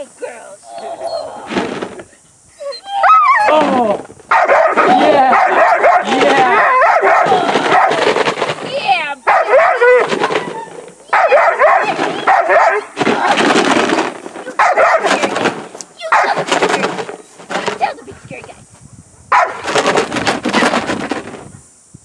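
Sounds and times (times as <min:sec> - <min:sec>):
dog barking and whining: 0:02.6 - 0:08.1, 0:09.2 - 0:12.9, 0:14.5 - 0:15.3, 0:16.0 - 0:16.5, 0:19.3 - 0:19.8.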